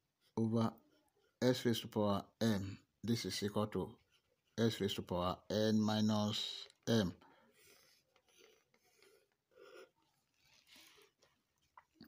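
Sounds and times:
pen scratching on paper: 7.5s - 11.0s.

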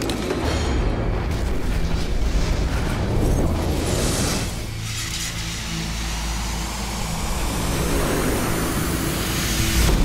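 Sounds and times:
held drone: 2.3s - 10.0s.

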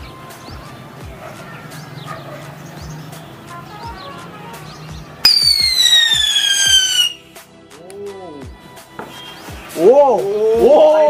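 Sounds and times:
background music: 0.0s - 11.0s
shrill falling whistle: 5.2s - 7.2s.

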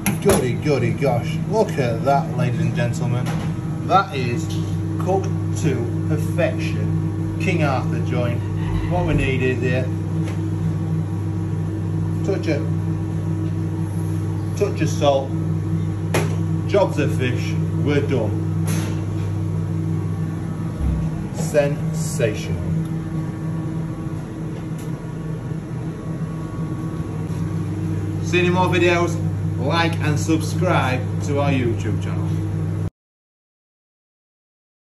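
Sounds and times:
kitchen fans humming: 0.0s - 32.9s.

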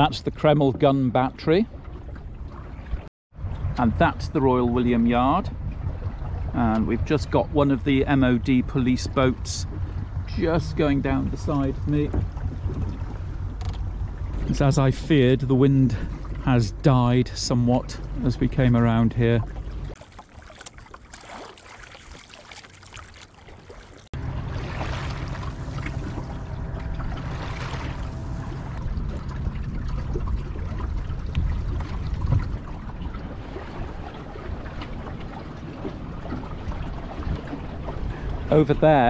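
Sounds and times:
water lapping along a hull: 0.0s - 39.0s
steady rush with low rumble: 3.4s - 20.0s, 24.2s - 39.0s.

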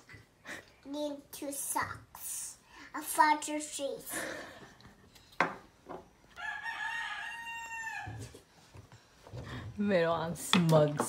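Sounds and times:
rooster crowing: 6.4s - 8.4s.

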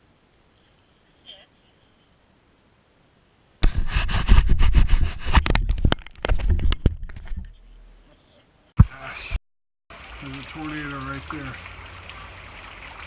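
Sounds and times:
handling noise at microphone: 3.6s - 7.6s.

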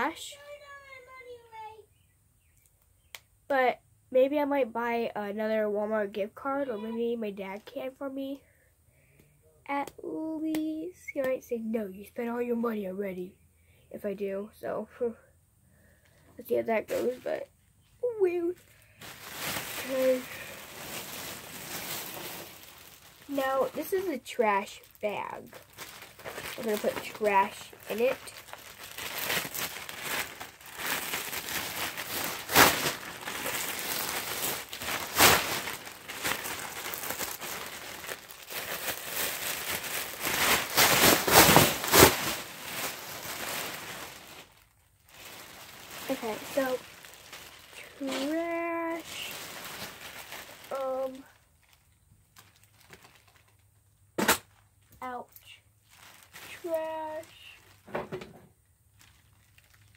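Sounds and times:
plastic bag crinkling: 18.1s - 58.0s, 58.8s - 59.9s.

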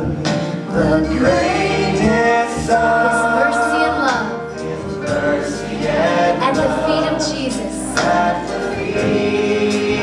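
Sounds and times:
band playing: 0.0s - 10.0s
group singing long held notes: 0.0s - 10.0s.

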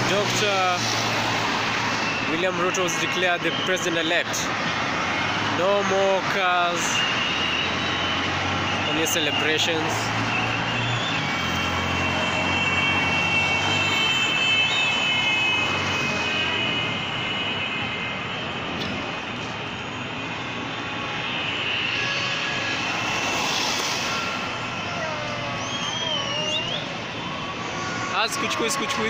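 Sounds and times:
vehicle engine and road noise: 0.0s - 29.0s.

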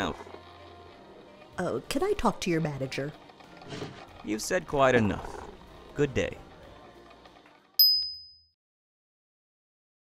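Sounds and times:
high bell-like ding: 7.8s - 8.6s.

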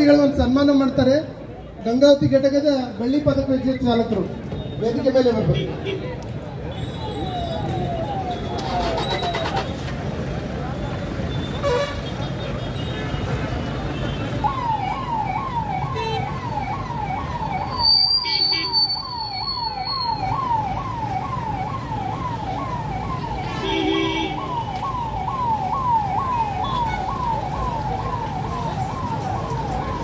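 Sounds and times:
crowd noise: 0.0s - 30.0s
traffic: 0.0s - 30.0s
police siren wailing: 7.0s - 9.8s, 14.3s - 30.0s.

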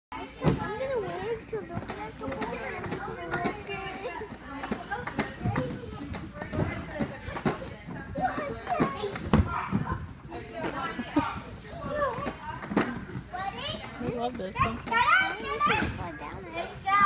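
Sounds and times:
children chattering and calling out: 0.1s - 17.0s.

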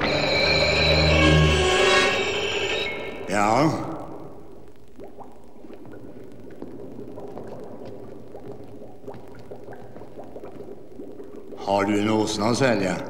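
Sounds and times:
liquid bubbling: 3.2s - 13.0s.

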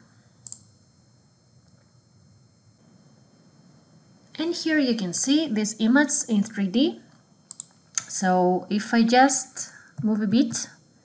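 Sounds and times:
computer mouse click: 0.4s - 0.7s, 7.5s - 8.1s.

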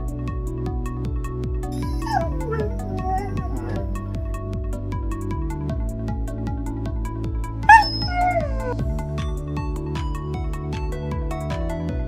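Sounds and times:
background music with steady beat: 0.0s - 12.0s
dog whining: 1.8s - 4.0s, 7.7s - 8.8s.

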